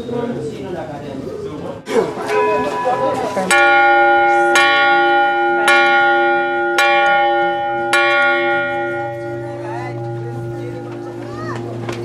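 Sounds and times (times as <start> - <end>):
large temple bell ringing: 1.9 - 12.0.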